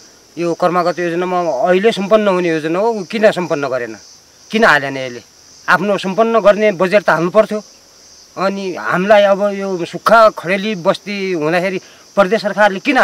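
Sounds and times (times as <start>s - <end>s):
insects droning: 0.0s - 13.0s
man talking: 0.4s - 7.6s, 8.4s - 13.0s.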